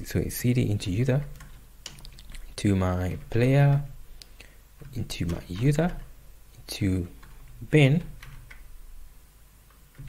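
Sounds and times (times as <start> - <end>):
soft keyboard keystrokes: 1.2 - 2.5, 3.1 - 8.7.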